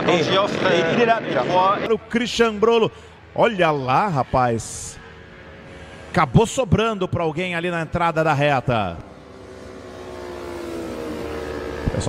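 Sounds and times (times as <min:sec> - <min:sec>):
motorcycle engine approaching: 0:08.3 - 0:12.0.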